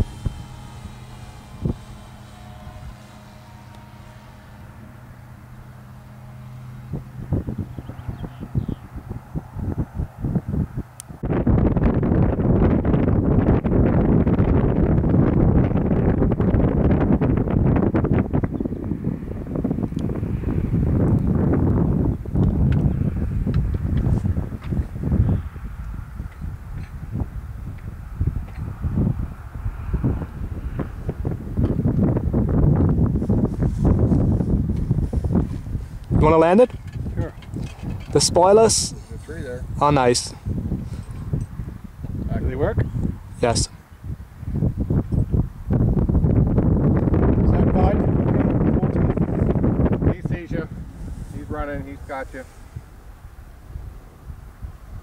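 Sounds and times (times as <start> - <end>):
faint engine drone: 0.0 - 55.0
wind buffeting microphone: 0.0 - 55.0.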